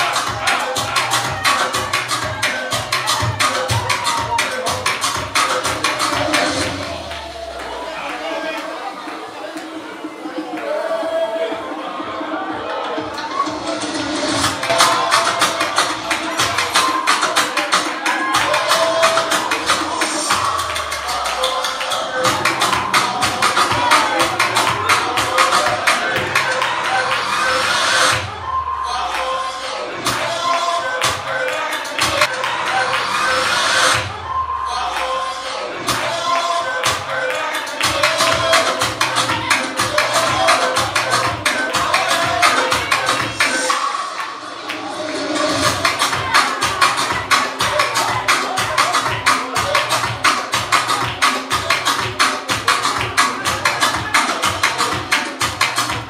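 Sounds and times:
upbeat dance music: 0:00.0 - 0:56.0
hand clapping: 0:45.7 - 0:56.0.

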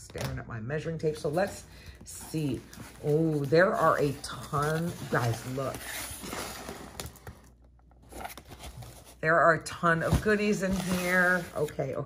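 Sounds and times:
cardboard rustling and scraping: 0:01.3 - 0:09.2, 0:09.8 - 0:12.0.

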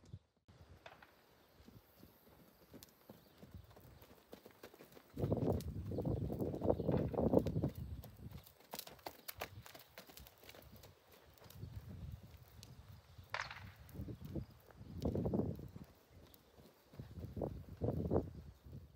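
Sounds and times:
hooves trotting on dirt: 0:00.0 - 0:18.9.

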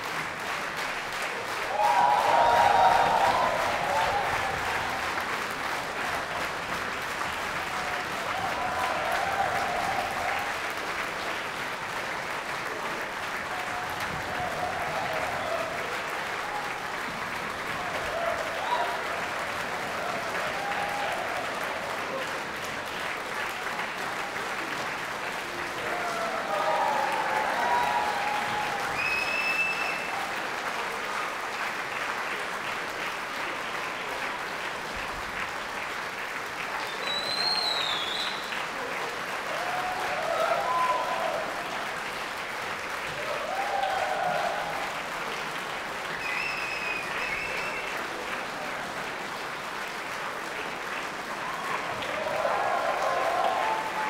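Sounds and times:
audience applauding: 0:00.0 - 0:54.0
high whistle: 0:29.0 - 0:30.1, 0:37.0 - 0:38.5, 0:46.2 - 0:47.9.

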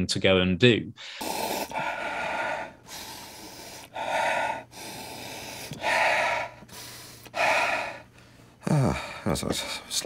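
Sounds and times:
man gasping breath: 0:01.0 - 0:09.8.

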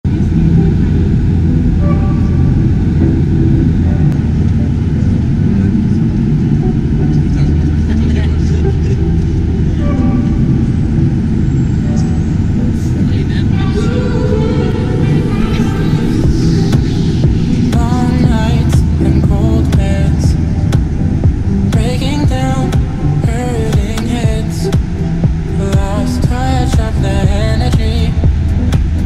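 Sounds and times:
faint voices: 0:00.0 - 0:28.2
jet engines rumbling: 0:00.0 - 0:29.0
rushing air: 0:00.0 - 0:29.0.

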